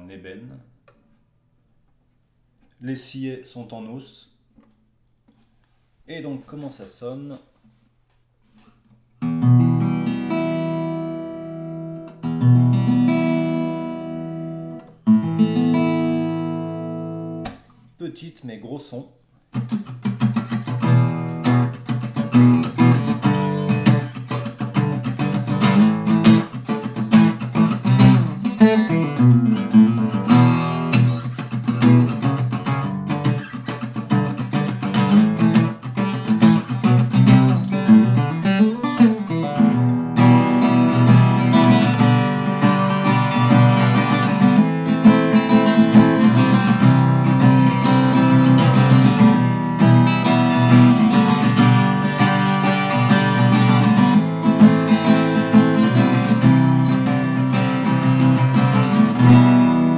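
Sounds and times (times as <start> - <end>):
acoustic guitar playing: 8.5 - 17.8, 19.4 - 59.9.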